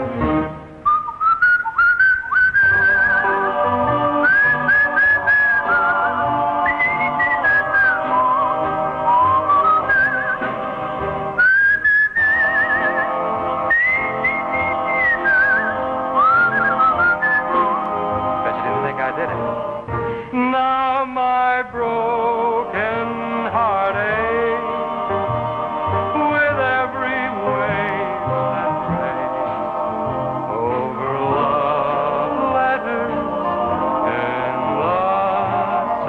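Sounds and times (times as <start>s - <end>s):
whistled melody with trills: 0.4s - 10.6s, 11.3s - 18.3s
soft sustained backing chords: 2.9s - 36.0s.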